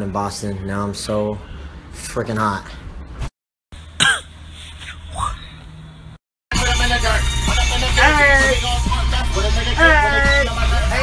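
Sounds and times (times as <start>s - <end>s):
man clearing throat: 4.0s - 4.3s.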